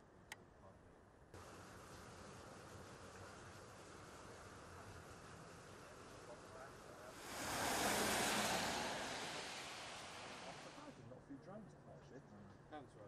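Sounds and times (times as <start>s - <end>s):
outdoor hiss: 1.4s - 11.0s
loud rushing surge: 7.2s - 10.9s.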